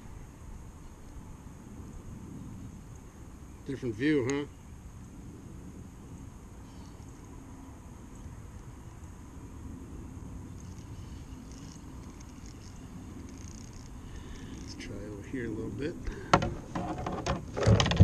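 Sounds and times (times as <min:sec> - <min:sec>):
breeze buffeting microphone: 0:00.0 - 0:18.0
faint high ticks: 0:10.5 - 0:14.8.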